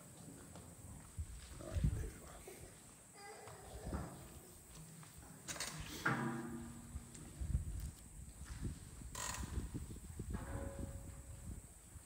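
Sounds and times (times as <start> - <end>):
wind rumbling on microphone: 1.0 - 2.4, 6.4 - 12.0.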